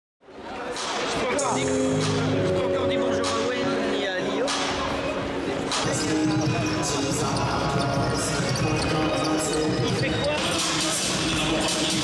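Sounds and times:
arena music: 0:00.7 - 0:12.0.

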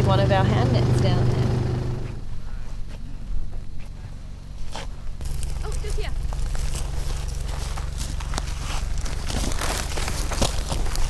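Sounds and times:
steady low hum: 0:00.0 - 0:11.0
footsteps in scrub: 0:02.1 - 0:11.0.

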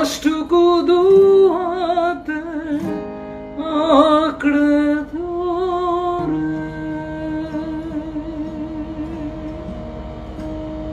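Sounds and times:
acoustic guitar ringing: 0:00.0 - 0:10.9.

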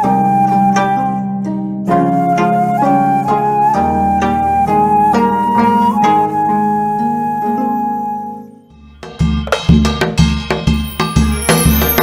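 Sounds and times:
held melody line: 0:00.0 - 0:08.8, 0:10.7 - 0:12.0
plucked zither tune: 0:00.0 - 0:12.0.

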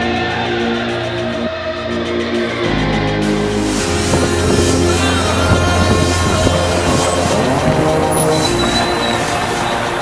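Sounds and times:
background music: 0:00.0 - 0:10.0
car engines driving on dirt: 0:03.9 - 0:10.0.

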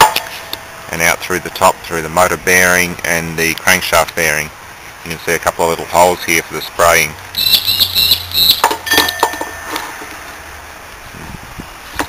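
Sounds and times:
short ringing tone: 0:07.4 - 0:10.0.

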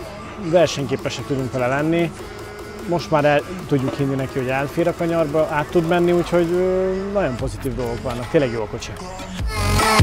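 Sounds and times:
background music: 0:00.0 - 0:10.0
man speaking: 0:00.4 - 0:02.2, 0:02.8 - 0:09.2.

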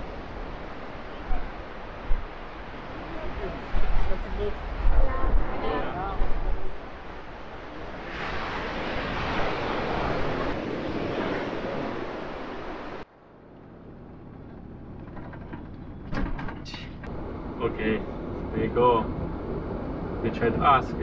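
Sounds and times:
wind on microphone: 0:00.0 - 0:13.0
ocean surf on rocky beach: 0:00.0 - 0:13.1.

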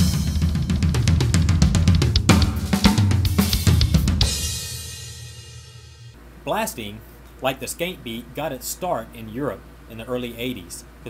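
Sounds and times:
fast drumming on drum kit: 0:00.0 - 0:05.4
cymbal ringing: 0:00.0 - 0:06.2.

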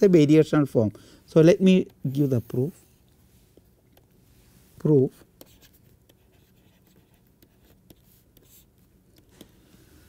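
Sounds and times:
stylus tapping and scratching screen: 0:04.8 - 0:09.6.

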